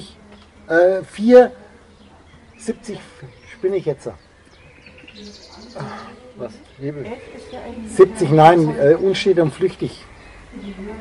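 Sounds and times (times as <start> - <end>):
bird trilling: 2.0 - 7.8.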